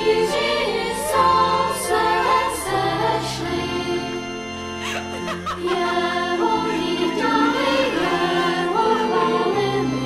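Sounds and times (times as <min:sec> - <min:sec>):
group singing a carol: 0:00.0 - 0:04.5, 0:05.4 - 0:10.0.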